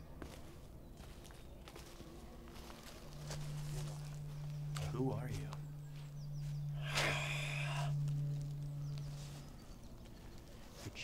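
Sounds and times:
footsteps on leaf litter and twigs: 0.2 - 11.0.

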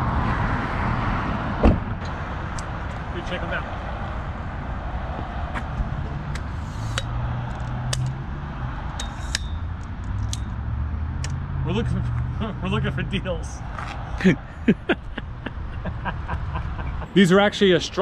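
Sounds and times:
car door thumping shut: 1.6 - 2.0
tripod clicks and rattles: 6.3 - 8.2, 8.9 - 10.6
steady low rumble: 12.0 - 17.2.

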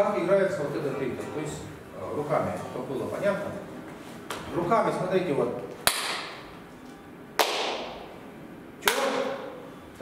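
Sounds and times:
sharp hand claps: 5.8 - 6.4, 7.4 - 8.0, 8.8 - 9.3.

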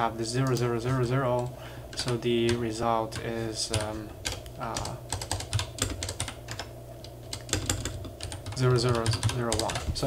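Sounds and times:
computer keyboard typing: 0.0 - 10.0.

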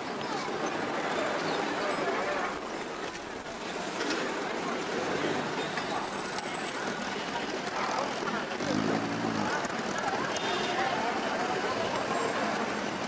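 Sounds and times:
people talking: 0.0 - 13.0
street traffic: 0.0 - 13.0
low vehicle drone: 8.5 - 10.1.

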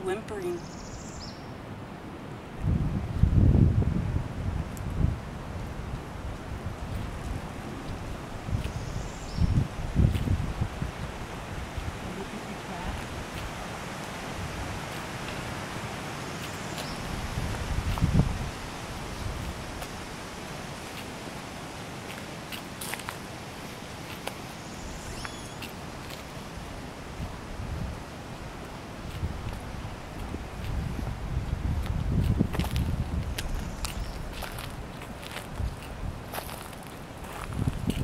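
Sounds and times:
breeze through trees: 0.0 - 38.0
wind buffeting microphone: 2.5 - 24.2, 24.9 - 38.0.

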